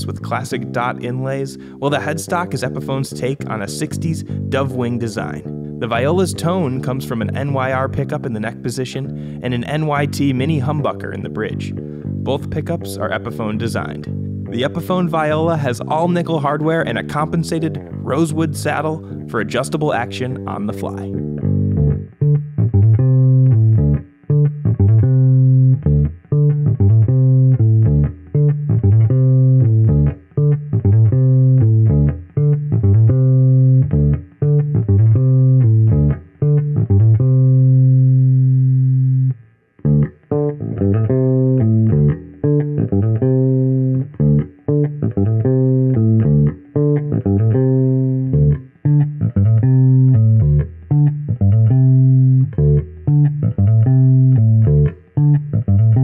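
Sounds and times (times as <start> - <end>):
plucked electric bass notes: 0.0 - 56.0.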